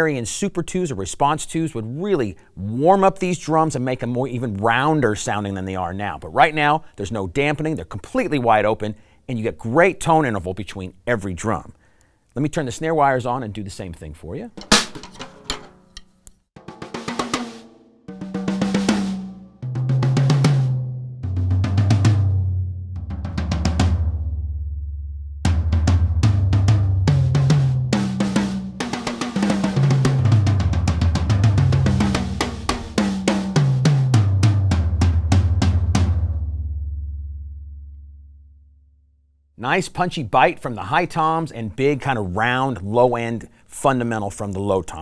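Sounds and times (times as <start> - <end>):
drum fills: 14.6 - 16.0, 16.6 - 24.4, 25.5 - 36.9
tom drums struck: 14.6 - 20.8, 25.5 - 36.6.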